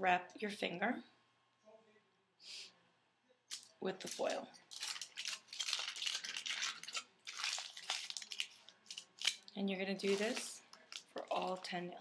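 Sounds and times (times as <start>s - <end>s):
aluminum foil crinkling: 3.5s - 11.8s.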